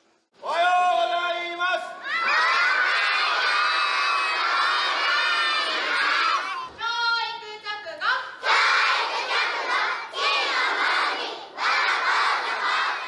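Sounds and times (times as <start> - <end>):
children chanting in unison: 2.0 - 6.7, 8.4 - 13.0.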